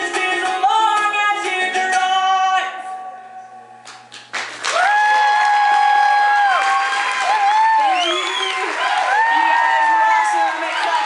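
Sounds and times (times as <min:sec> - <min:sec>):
woman singing: 0:00.0 - 0:03.3
applause: 0:03.8 - 0:11.0
loud whoo cheer: 0:04.7 - 0:11.0.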